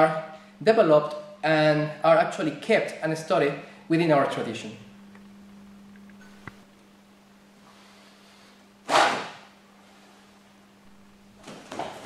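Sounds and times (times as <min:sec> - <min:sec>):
wooden sword swishing: 0:08.9 - 0:09.5.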